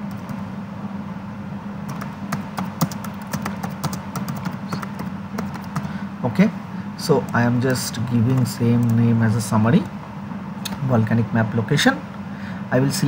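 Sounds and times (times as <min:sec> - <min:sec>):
steady low hum: 0:00.0 - 0:13.0
computer keyboard typing: 0:01.9 - 0:05.9, 0:07.2 - 0:09.1.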